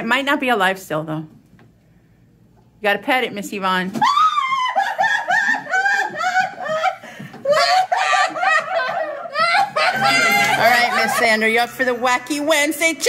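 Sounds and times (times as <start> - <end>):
woman laughing: 4.3 - 12.0.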